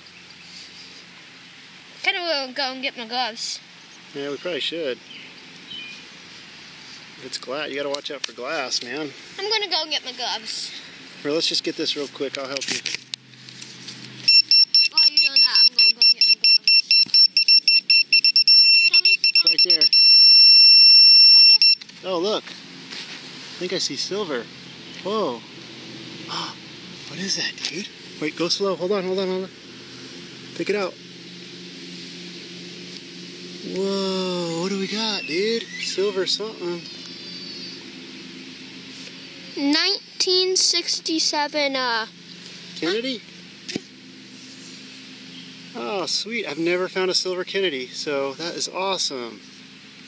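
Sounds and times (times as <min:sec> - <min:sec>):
metal detector pinpointer beeping: 0:14.2 - 0:21.8.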